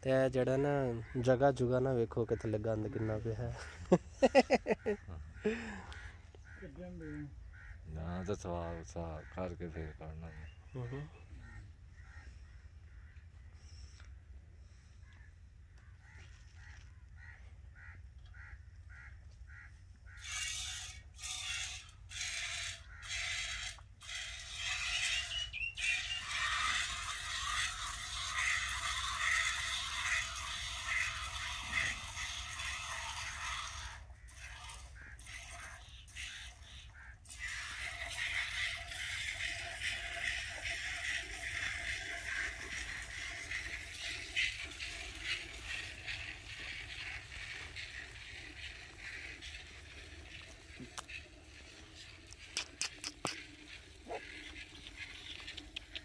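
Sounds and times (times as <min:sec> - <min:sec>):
milk squirting into metal pot: 0:20.1 - 0:56.0.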